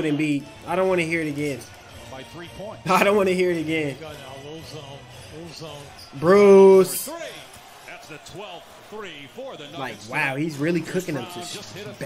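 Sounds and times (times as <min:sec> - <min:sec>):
arena crowd noise: 0:00.0 - 0:12.0
tv commentator talking: 0:00.0 - 0:12.0.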